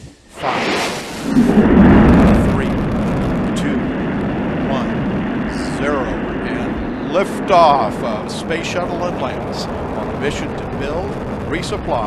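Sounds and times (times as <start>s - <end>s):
rocket engines rumbling roar: 0.3s - 12.0s.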